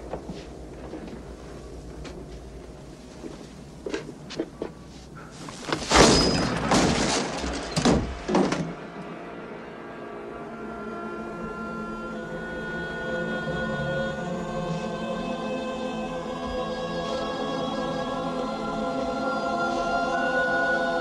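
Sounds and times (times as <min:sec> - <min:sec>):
loud crashing clatter: 0:05.8 - 0:08.8
low sustained music: 0:08.7 - 0:21.0.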